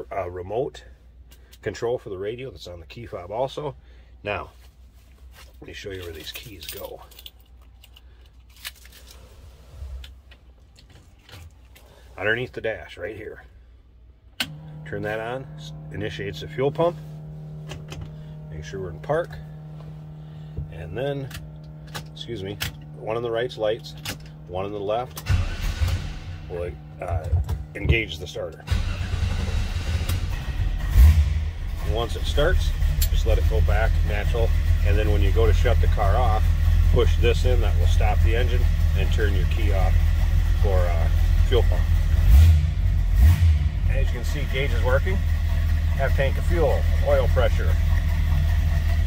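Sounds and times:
car engine low rumble: 0.0s - 49.0s
low steady hum: 0.0s - 49.0s.

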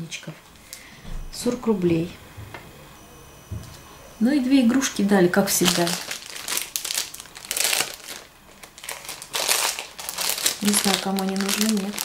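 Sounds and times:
foil packets crinkling: 5.3s - 12.0s.

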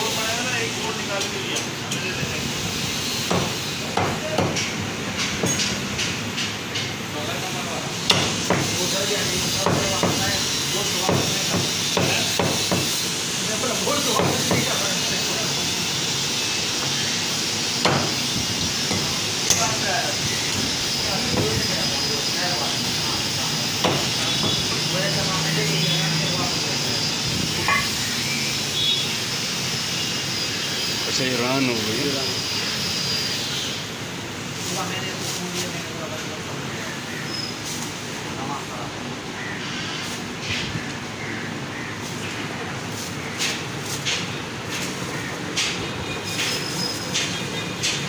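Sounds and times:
shop background noise: 0.0s - 48.0s
cleaver chopping meat on wood: 11.1s - 12.9s.

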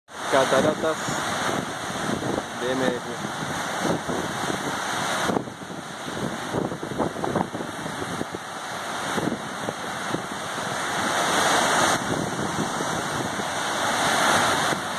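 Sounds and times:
water cascading over concrete: 0.1s - 14.9s.

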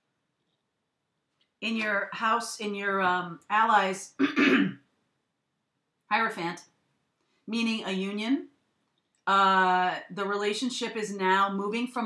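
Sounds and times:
woman clearing her throat: 4.2s - 4.8s.

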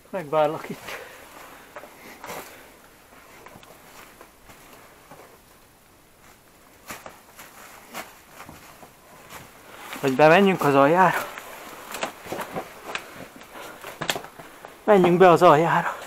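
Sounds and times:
footsteps on loose stone: 6.2s - 15.2s.

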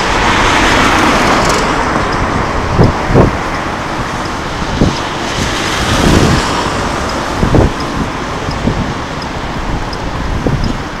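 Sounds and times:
passing road traffic: 0.0s - 11.0s.

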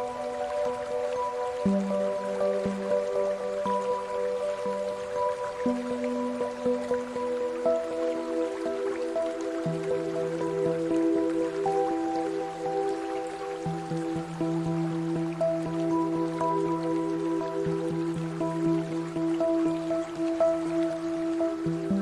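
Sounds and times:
calm ambient music: 0.0s - 22.0s
small water drips ticking: 0.0s - 22.0s.

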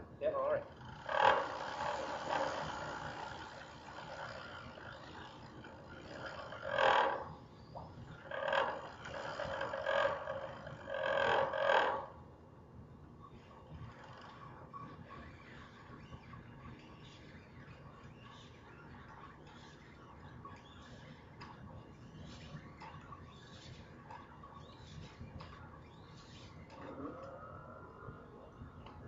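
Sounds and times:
muffled vocal sounds: 26.8s - 28.7s.

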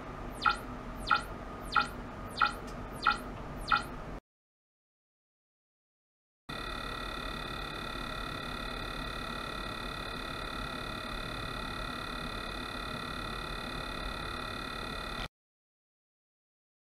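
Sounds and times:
steady electronic tone: 0.3s - 3.9s.

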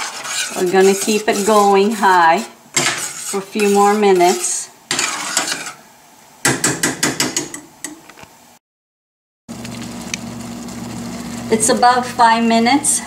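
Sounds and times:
spoon scraping through gravy: 0.0s - 5.8s.

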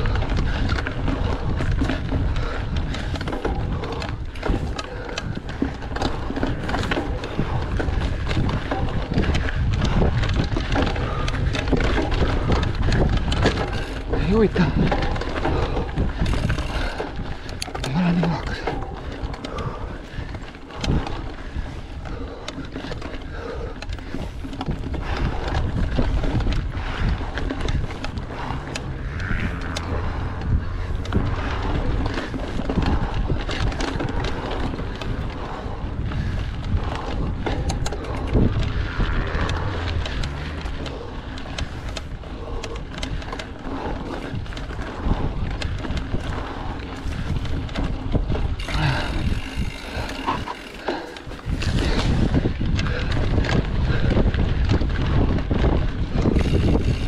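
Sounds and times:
bike knocks and rattles: 0.0s - 57.0s
bike tyres rumbling over ground: 0.0s - 57.0s
wind on microphone: 0.0s - 57.0s.

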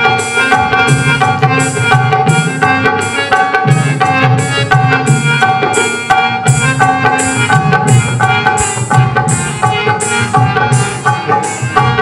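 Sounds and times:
bright high beat: 0.0s - 12.0s
hand drum rhythm: 0.0s - 12.0s
harmonium chords: 0.0s - 12.0s.

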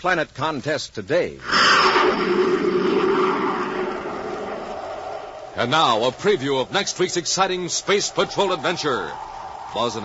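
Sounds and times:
low hum: 1.4s - 10.0s
rocket engine rushing noise: 1.4s - 10.0s.

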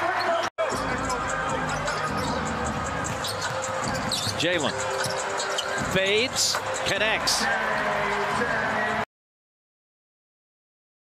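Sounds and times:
arena crowd noise: 0.0s - 9.1s.

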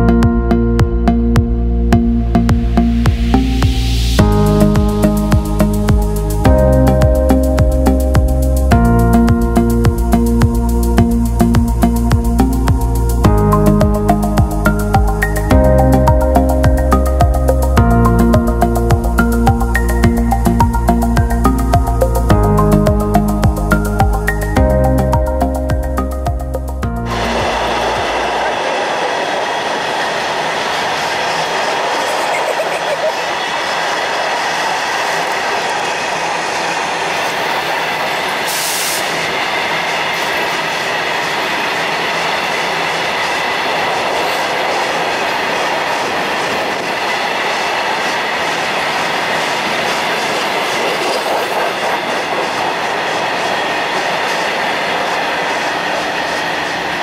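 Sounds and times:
music: 0.0s - 28.5s
train wheels rumbling on rail: 1.4s - 57.0s.

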